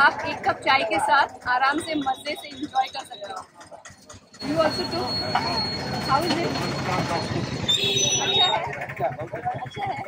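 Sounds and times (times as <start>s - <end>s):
motorbikes passing: 0.0s - 10.0s.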